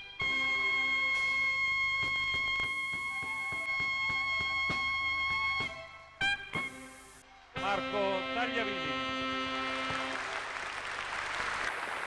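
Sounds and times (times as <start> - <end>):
audience applauding: 9.4 - 12.0.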